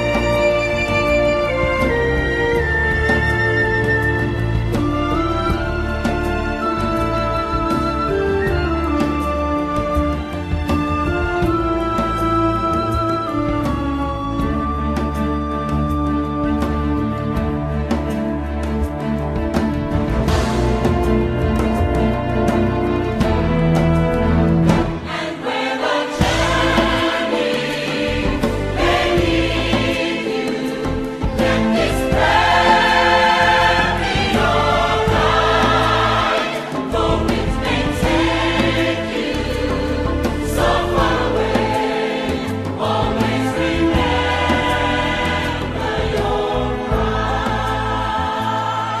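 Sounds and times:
choir singing held notes: 24.7s - 49.0s.

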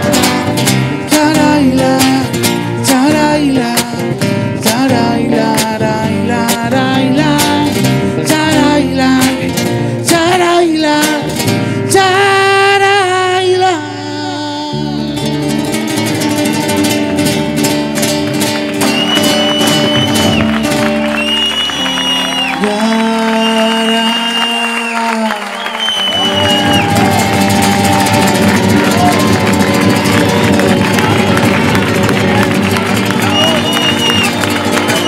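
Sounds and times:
electric bass guitar: 0.0s - 23.4s, 26.1s - 35.0s
spanish guitar strummed: 0.0s - 24.3s, 25.8s - 35.0s
audience clapping along: 18.0s - 35.0s.

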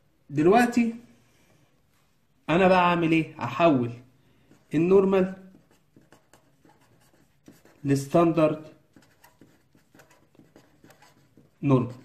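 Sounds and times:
pen scratching on paper: 4.4s - 12.0s.

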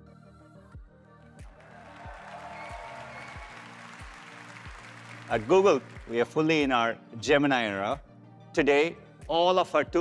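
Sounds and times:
audience applauding: 1.5s - 6.5s.

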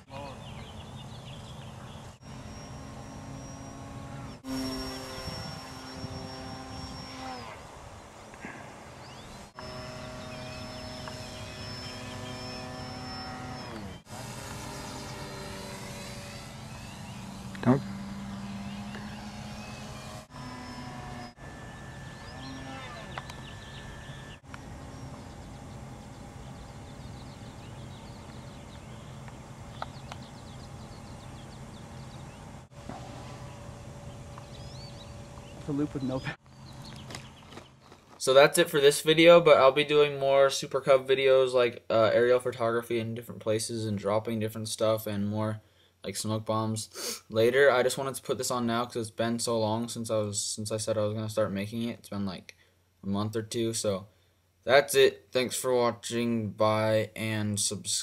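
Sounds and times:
rc airplane motors whining: 0.0s - 38.0s.

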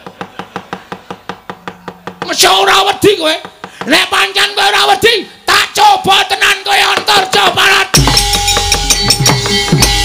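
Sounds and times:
sharp wooden clacks on chest: 6.9s - 8.8s.

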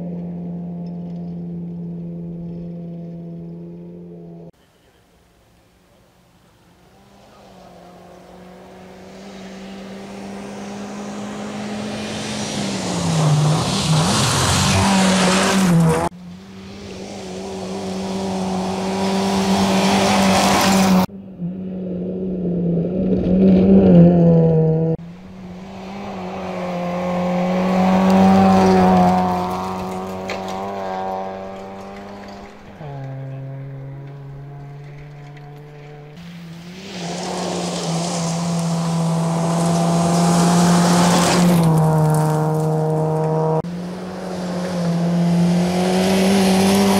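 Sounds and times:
rally car engine at high revs: 6.8s - 46.9s.

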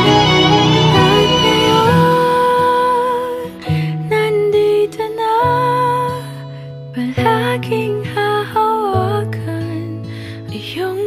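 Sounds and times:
guitar: 0.0s - 11.0s
person singing slow tender song: 0.0s - 11.0s.

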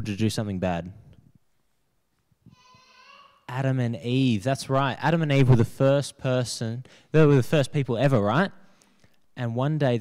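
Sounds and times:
child calling out: 2.5s - 3.5s.

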